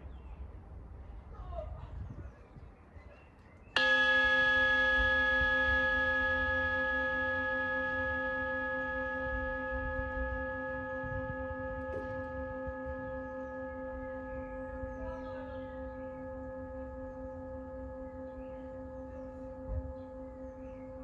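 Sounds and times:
long ringing tone: 0:03.8 - 0:21.0.

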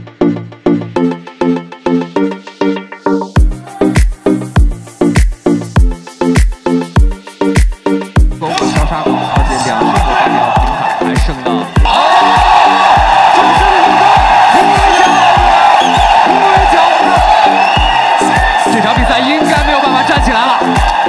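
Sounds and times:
music with thumping beat: 0:03.3 - 0:21.0
crowd noise and excited voices: 0:08.4 - 0:21.0.

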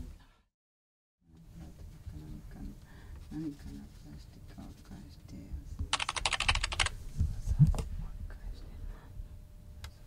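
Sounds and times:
computer keyboard clicks: 0:05.9 - 0:06.9.

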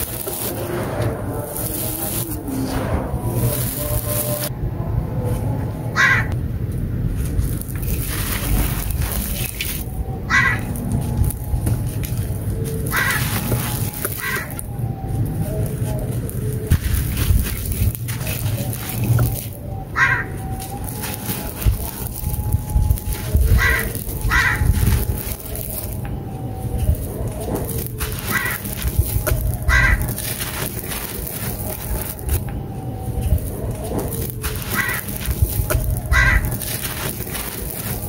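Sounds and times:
dirt crumbling and crunching: 0:00.0 - 0:04.5, 0:07.0 - 0:38.0
loose soil trickling: 0:07.2 - 0:10.1, 0:15.6 - 0:19.6, 0:20.5 - 0:38.0
bird harsh calls: 0:10.3 - 0:10.7, 0:12.9 - 0:13.3, 0:14.2 - 0:14.5, 0:19.9 - 0:20.4, 0:23.6 - 0:24.7, 0:28.3 - 0:28.7, 0:29.7 - 0:30.2, 0:34.6 - 0:35.2, 0:36.1 - 0:36.6
harsh bird call: 0:19.8 - 0:20.4, 0:29.7 - 0:30.2, 0:34.6 - 0:35.2, 0:36.1 - 0:36.5.

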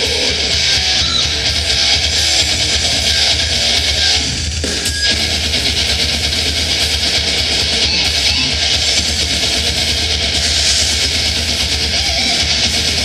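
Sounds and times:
death metal band playing live: 0:00.0 - 0:13.0
rapid kick drum: 0:00.0 - 0:13.0.

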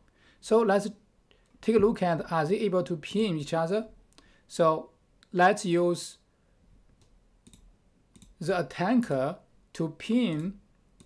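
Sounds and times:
faint computer mouse clicks: 0:06.9 - 0:08.4.

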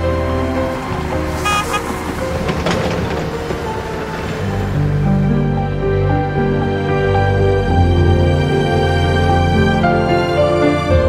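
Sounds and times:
background music: 0:00.0 - 0:11.0
street traffic: 0:00.0 - 0:11.0
car horn toots: 0:01.4 - 0:02.1.

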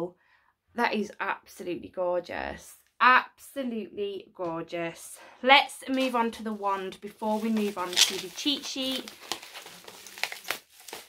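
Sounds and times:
packaging rustling and crinkling: 0:06.7 - 0:11.0
packaging crackles and taps: 0:07.5 - 0:11.0.

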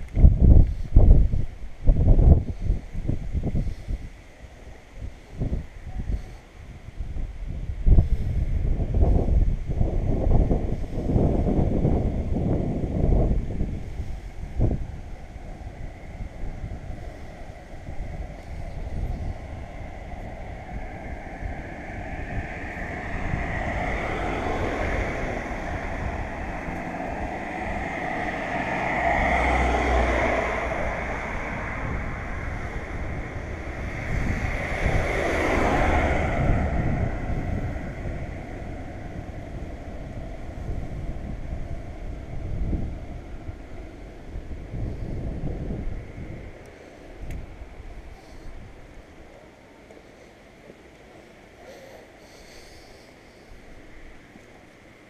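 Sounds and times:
road traffic passing: 0:00.0 - 0:55.0
wind buffeting microphone: 0:00.0 - 0:55.0.

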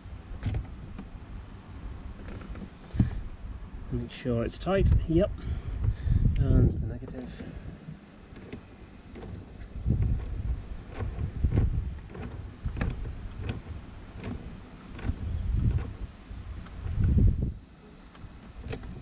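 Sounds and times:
low rumbles on microphone: 0:00.0 - 0:08.0, 0:09.1 - 0:17.7.

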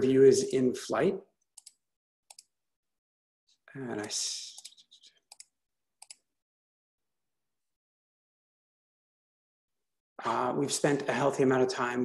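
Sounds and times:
computer mouse clicks: 0:01.5 - 0:02.5, 0:04.0 - 0:06.3.

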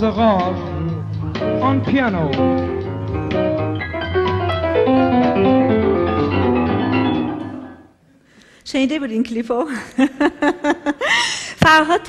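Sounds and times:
steady bass: 0:00.0 - 0:07.8
piano run of notes: 0:01.0 - 0:07.9.

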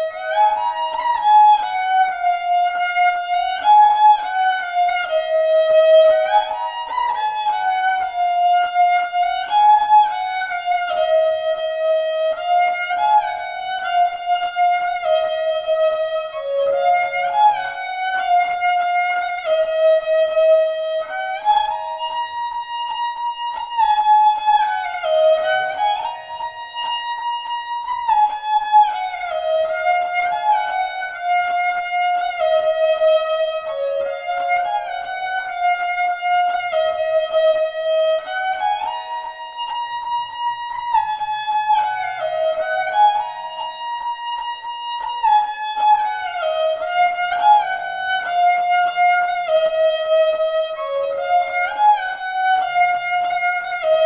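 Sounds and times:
bowed fiddle melody: 0:00.0 - 0:54.0.

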